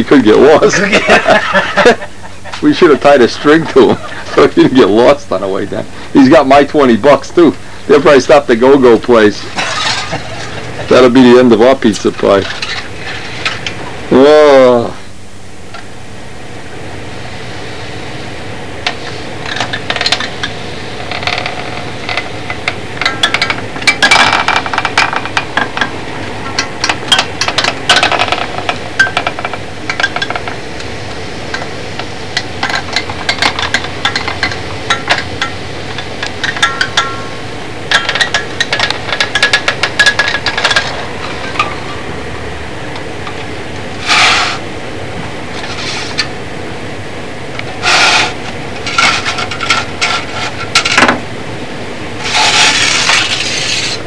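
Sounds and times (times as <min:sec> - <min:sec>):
steady low hiss: 0:00.0 - 0:54.0
wire scraping rustles: 0:09.3 - 0:13.9, 0:45.5 - 0:46.4, 0:47.6 - 0:51.1, 0:52.2 - 0:54.0.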